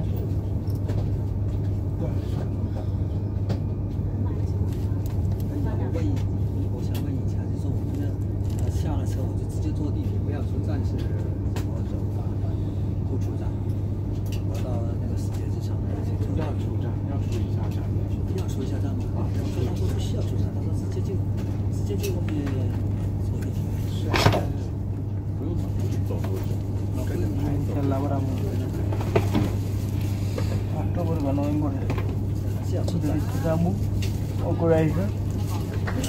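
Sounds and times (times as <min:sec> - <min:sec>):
vehicle cabin hum and rumble: 0:00.0 - 0:34.4
passengers talking faintly: 0:00.0 - 0:36.0.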